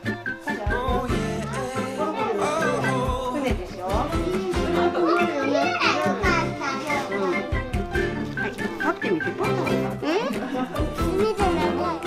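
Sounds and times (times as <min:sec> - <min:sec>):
background music: 0:00.0 - 0:12.0
children talking: 0:00.6 - 0:12.0.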